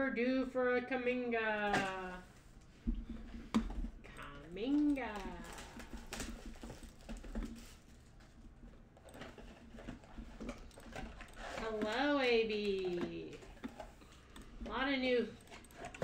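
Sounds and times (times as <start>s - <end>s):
cards rustling: 1.8s - 16.0s.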